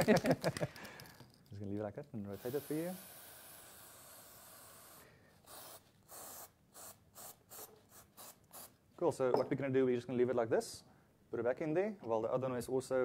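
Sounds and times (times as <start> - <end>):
aerosol can spraying: 2.3 - 8.8.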